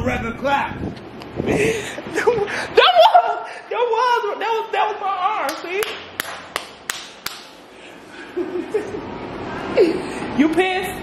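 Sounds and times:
sharp taps: 0:05.5 - 0:07.5.

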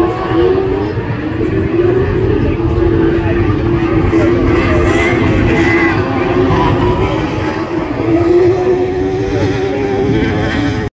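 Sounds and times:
racing buggy engine running: 0:00.0 - 0:10.9.

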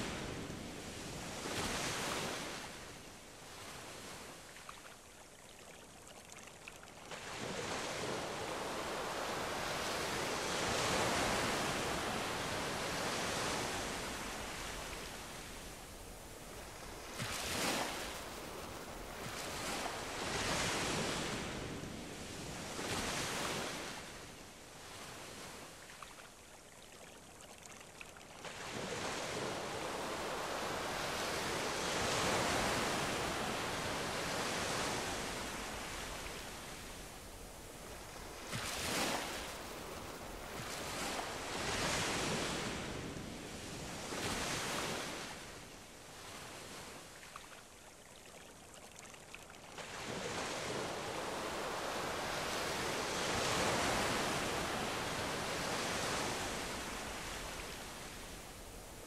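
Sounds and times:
sea waves breaking: 0:07.1 - 0:21.8, 0:28.4 - 0:45.6.

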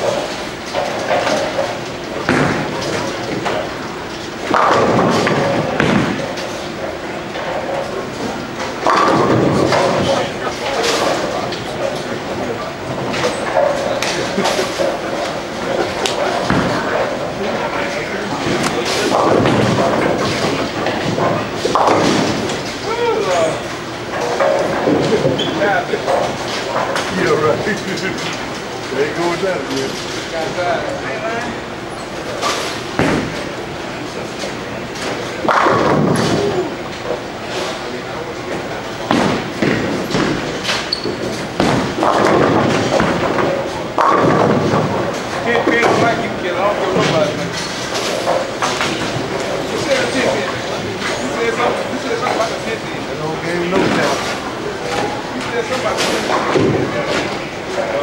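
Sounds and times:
bowling balls crashing into pins: 0:00.0 - 0:29.2, 0:32.1 - 0:58.0
background chatter of bowlers: 0:00.0 - 0:58.0.

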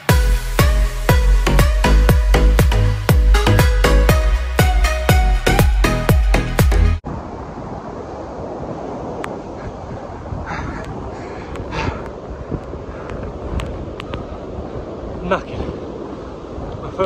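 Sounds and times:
surf breaking on beach: 0:07.0 - 0:17.0
wind on microphone: 0:07.0 - 0:17.0
man exhaling heavily: 0:10.4 - 0:12.2.

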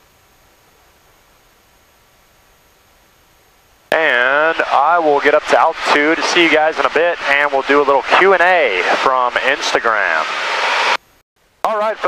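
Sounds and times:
faint steady hiss: 0:00.0 - 0:12.0
man's voice: 0:03.9 - 0:10.3, 0:11.7 - 0:12.0.

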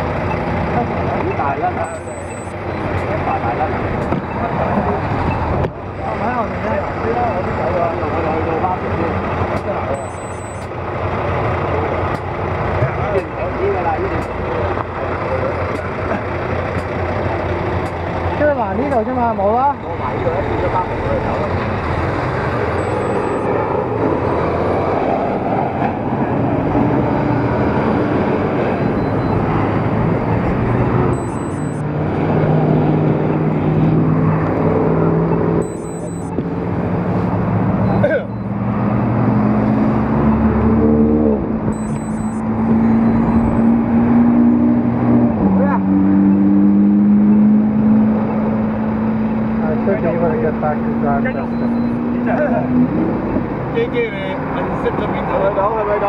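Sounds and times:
passing vehicles: 0:00.0 - 0:56.0
vehicle engine accelerating: 0:00.0 - 0:56.0.

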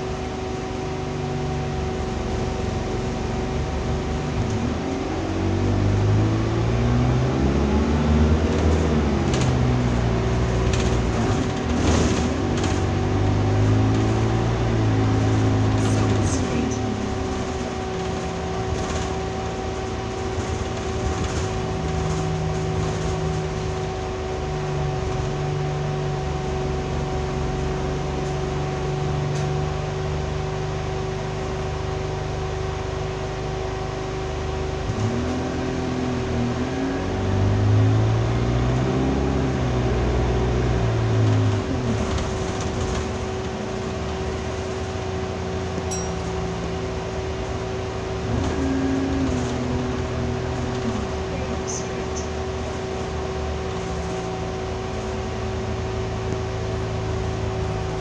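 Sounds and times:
steady whine: 0:00.0 - 0:38.2, 0:39.5 - 0:58.0
bus diesel engine running: 0:00.0 - 0:58.0.

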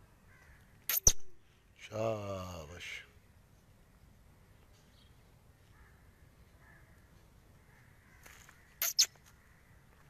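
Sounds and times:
francolin calling: 0:08.8 - 0:09.6.

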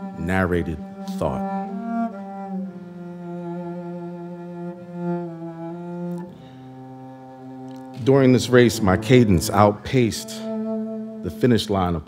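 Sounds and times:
bowed cello held notes: 0:00.0 - 0:12.0.

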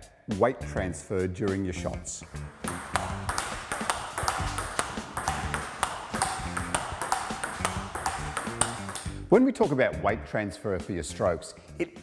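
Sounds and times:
table tennis ball hits: 0:02.2 - 0:09.3.

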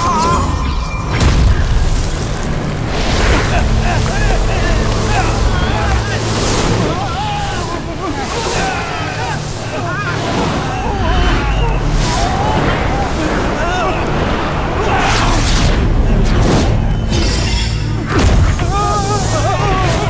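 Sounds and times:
low rumble: 0:00.7 - 0:17.1
wavering voice-like cries: 0:03.5 - 0:14.1.

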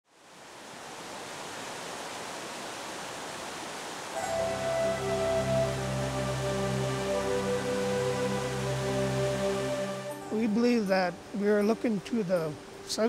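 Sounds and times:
river water rushing over rapids: 0:00.1 - 0:13.0
music of long held notes: 0:04.2 - 0:12.9.

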